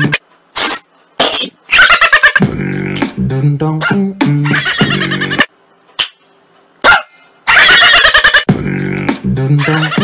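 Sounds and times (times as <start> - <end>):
pulsing cartoon laughing effect: 1.7 - 2.6, 3.8 - 5.5, 7.5 - 8.5, 9.6 - 10.0.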